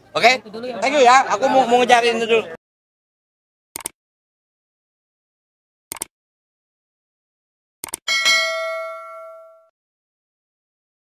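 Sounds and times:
bell-like chime ringing: 8.1s - 9.7s.

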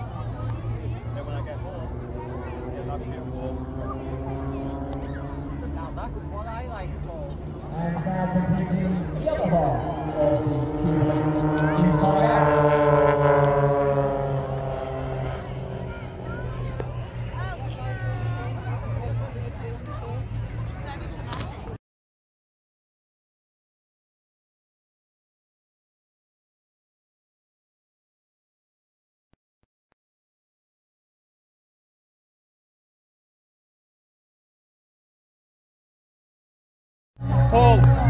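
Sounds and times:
aircraft engines droning: 0.0s - 21.8s.

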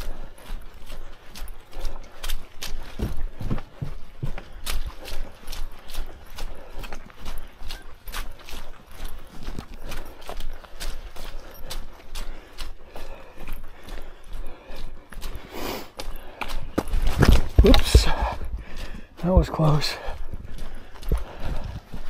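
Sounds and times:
footsteps crunching on dry leaves: 0.0s - 22.0s.

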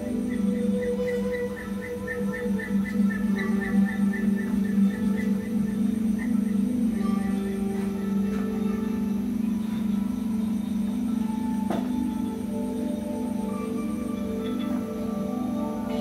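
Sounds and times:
low ambient drone: 0.0s - 16.0s.

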